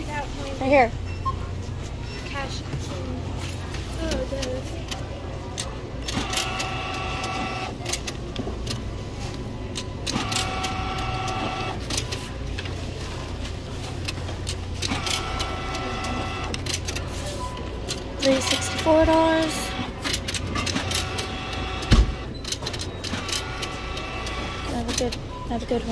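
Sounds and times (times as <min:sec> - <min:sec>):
bill acceptor motor whirring: 0:05.0 - 0:12.8, 0:13.9 - 0:25.8.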